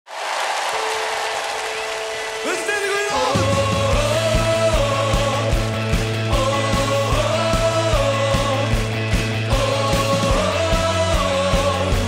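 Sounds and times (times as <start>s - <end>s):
crowd applauding and cheering: 0.1s - 6.2s
band playing bass and kick drum: 3.3s - 12.0s.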